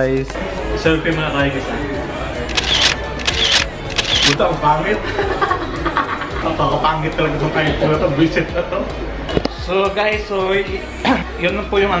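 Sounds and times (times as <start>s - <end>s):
camera shutter clicks: 2.4s - 4.4s.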